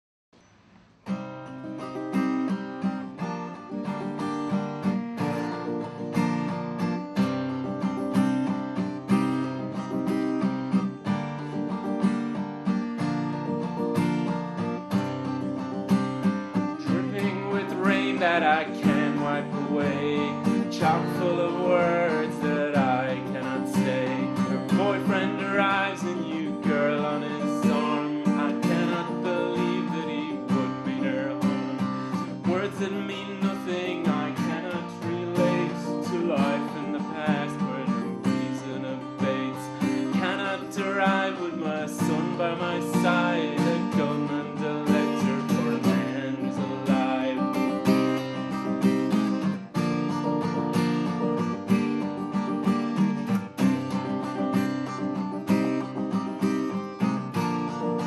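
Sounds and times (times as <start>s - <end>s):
acoustic guitar picked and strummed: 0.4s - 58.0s.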